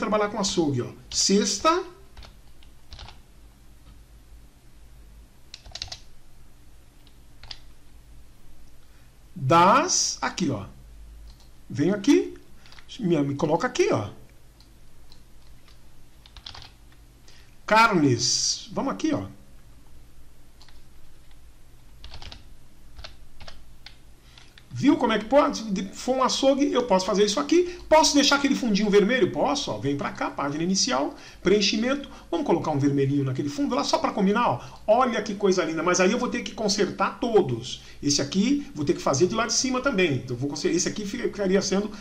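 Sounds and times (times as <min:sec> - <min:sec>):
computer keyboard keystrokes: 0:02.2 - 0:03.2, 0:05.5 - 0:06.1, 0:07.0 - 0:07.7, 0:11.3 - 0:11.5, 0:14.6 - 0:16.8, 0:20.6 - 0:21.4, 0:22.0 - 0:24.7.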